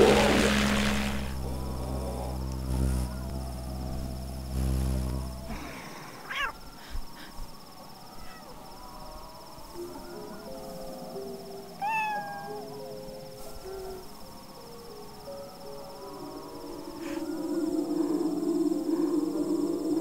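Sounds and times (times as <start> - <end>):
low droning hum: 0.0 - 5.9.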